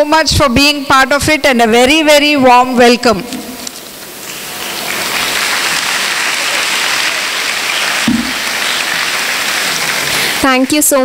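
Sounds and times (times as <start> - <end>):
audience applauding: 4.2 - 10.7.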